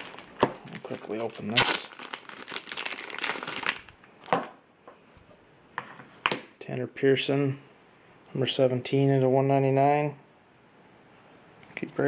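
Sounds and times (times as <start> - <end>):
plastic shrink wrap crinkling: 0.0 - 4.6.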